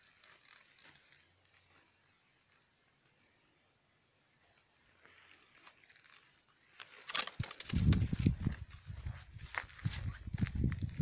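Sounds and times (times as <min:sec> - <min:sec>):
dry twigs and leaves crackling: 0:00.0 - 0:03.0, 0:04.6 - 0:11.0.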